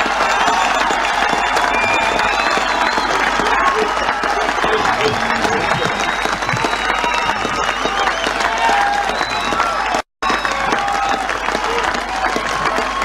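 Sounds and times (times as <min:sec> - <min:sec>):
crowd applauding: 0:00.0 - 0:13.0
crowd cheering and shouting: 0:00.0 - 0:13.0.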